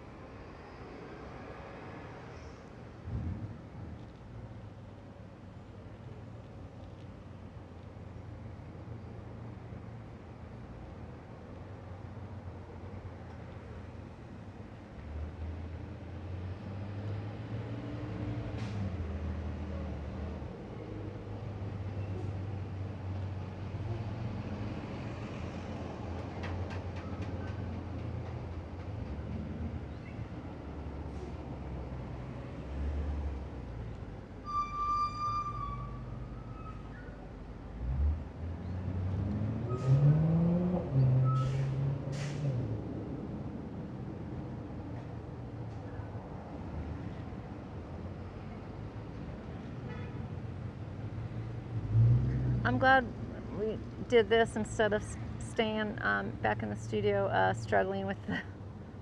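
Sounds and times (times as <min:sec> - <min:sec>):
vehicle engines passing: 0:06.8 - 0:34.5, 0:35.8 - 0:59.0
vehicle pulling away: 0:16.2 - 0:20.4, 0:37.7 - 0:43.4, 0:51.5 - 0:53.3
short high squeal: 0:34.4 - 0:37.2.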